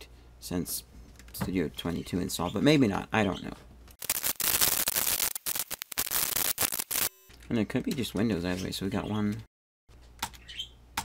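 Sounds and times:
harsh static hiss: 0:04.0 - 0:07.1.

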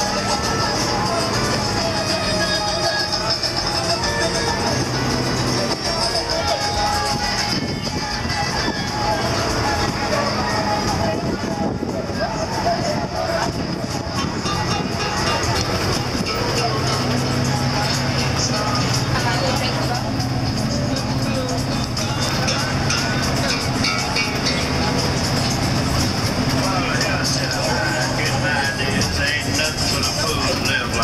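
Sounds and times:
bus engine and road noise: 0:00.0 - 0:31.0
music playing: 0:00.0 - 0:31.0
passengers talking: 0:00.0 - 0:31.0.

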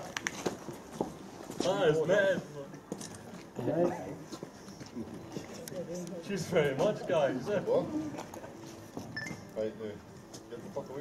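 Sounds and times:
murmur of quiet talk: 0:01.5 - 0:11.0.

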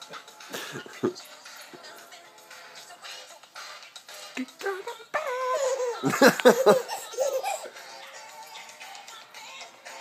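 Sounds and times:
person laughing: 0:00.5 - 0:01.2, 0:04.6 - 0:07.7.

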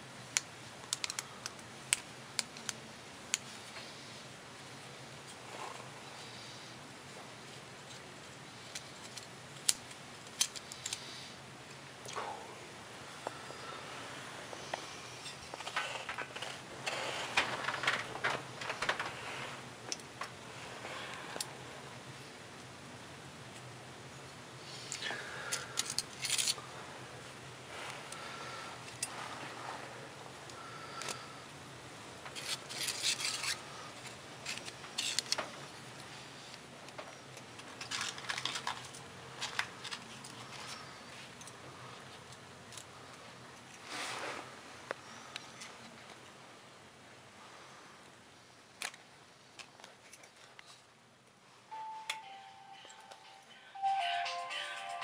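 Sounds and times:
hands handling sheet clicks: 0:00.3 - 0:03.5, 0:08.7 - 0:11.0.

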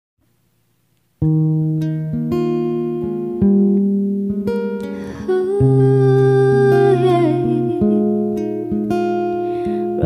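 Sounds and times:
acoustic guitar chords: 0:00.2 - 0:10.0
woman singing: 0:05.0 - 0:08.8.

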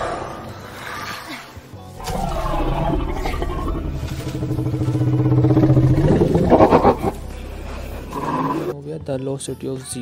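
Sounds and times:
low droning sound: 0:02.0 - 0:08.3.

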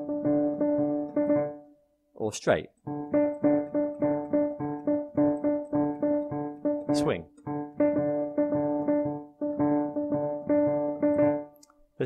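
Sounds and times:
digital piano repeating notes: 0:00.0 - 0:01.9, 0:02.7 - 0:11.7.

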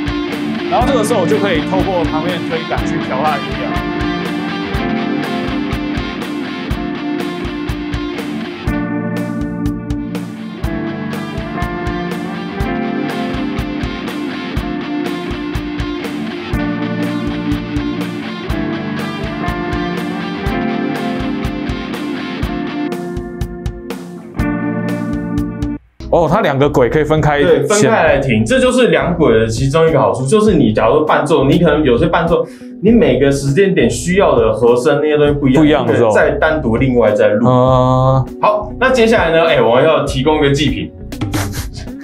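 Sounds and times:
looped electric guitars: 0:00.0 - 0:25.8.

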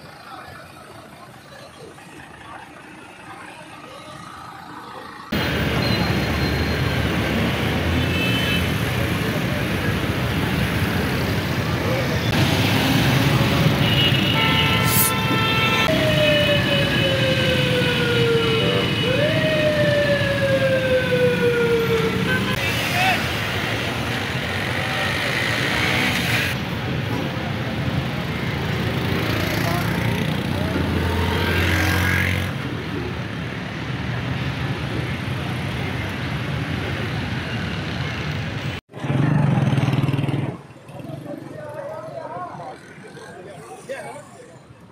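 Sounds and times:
road traffic noise: 0:00.0 - 0:44.9
vehicle horns: 0:07.9 - 0:08.9, 0:13.5 - 0:16.0, 0:22.2 - 0:23.0, 0:30.7 - 0:32.4.

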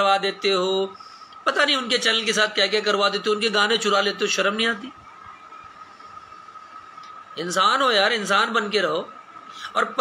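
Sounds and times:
faint background hiss: 0:00.0 - 0:10.0
steady high-pitched tone: 0:00.0 - 0:10.0.

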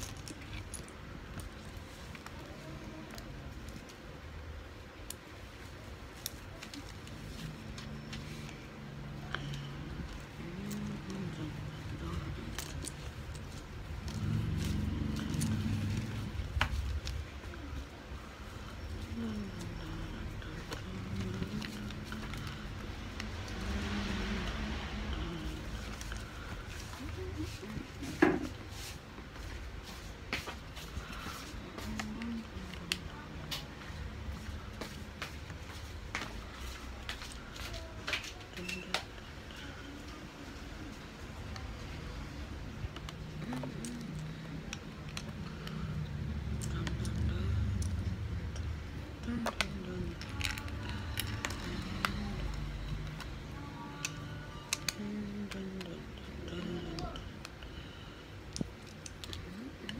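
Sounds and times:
low voice murmuring: 0:06.4 - 0:29.0, 0:30.8 - 0:35.4, 0:36.2 - 0:58.2.

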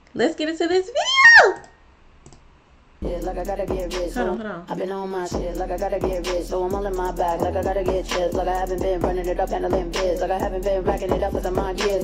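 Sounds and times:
faint clicks: 0:01.6 - 0:02.5
woman's drawn-out vocal sound: 0:04.2 - 0:04.7.

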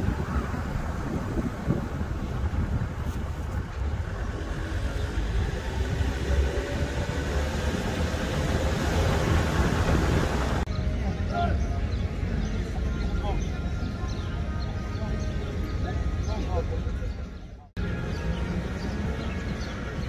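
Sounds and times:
wind buffeting microphone: 0:00.0 - 0:10.7
faint street ambience: 0:00.0 - 0:20.0.

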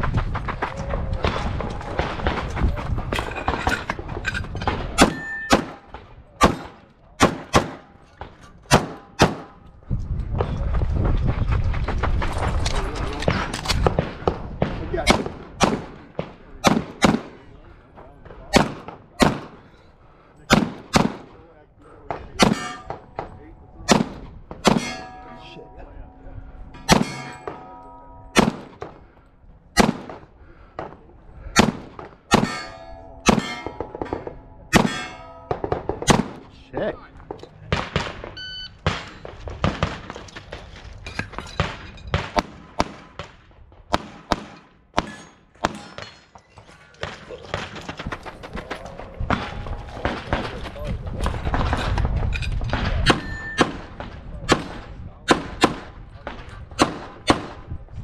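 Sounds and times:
pistol shots: 0:04.7 - 0:07.9, 0:08.7 - 0:09.6, 0:13.3 - 0:17.4, 0:18.5 - 0:19.7, 0:20.5 - 0:21.4, 0:22.1 - 0:25.2, 0:26.9 - 0:27.7, 0:28.4 - 0:29.0, 0:29.8 - 0:32.6, 0:33.2 - 0:36.5, 0:41.6 - 0:46.2, 0:52.7 - 0:57.7
steel targets ringing: 0:05.0 - 0:05.8, 0:22.4 - 0:29.3, 0:32.3 - 0:36.0, 0:53.1 - 0:53.7.

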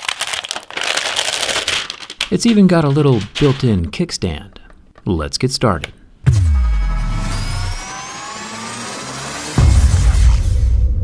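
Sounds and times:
multi-tone whine rising in pitch: 0:06.3 - 0:10.7.

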